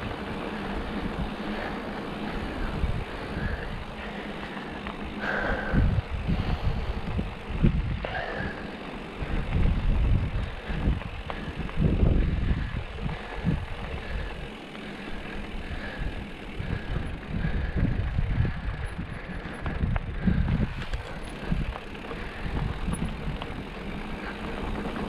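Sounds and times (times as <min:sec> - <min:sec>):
bike tyres crunching on gravel: 0:00.0 - 0:25.0
wind rumble on microphone: 0:00.0 - 0:25.0.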